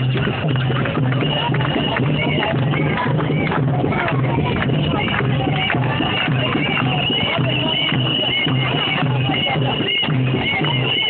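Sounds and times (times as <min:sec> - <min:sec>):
crowd chanting: 0:00.0 - 0:11.0
crowd clapping: 0:00.0 - 0:11.0.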